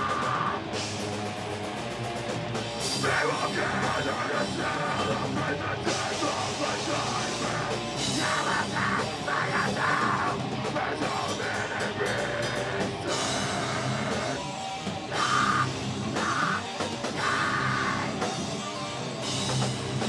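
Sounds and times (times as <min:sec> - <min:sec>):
distorted electric guitars: 0:00.0 - 0:20.0
drum kit: 0:00.0 - 0:20.0
shouted vocals: 0:03.0 - 0:14.4, 0:15.1 - 0:18.2.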